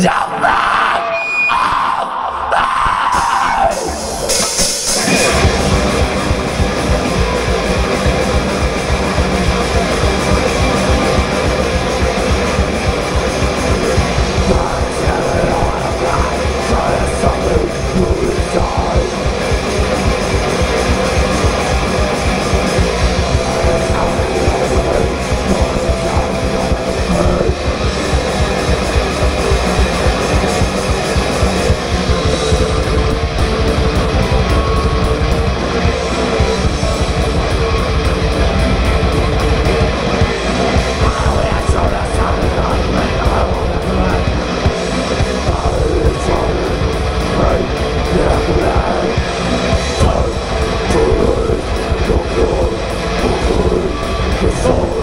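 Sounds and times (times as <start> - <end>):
thrash metal band playing: 0.0 - 55.0.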